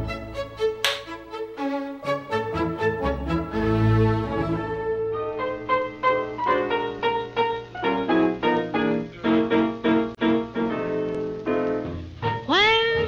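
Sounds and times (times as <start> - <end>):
piano music: 0.0 - 13.0.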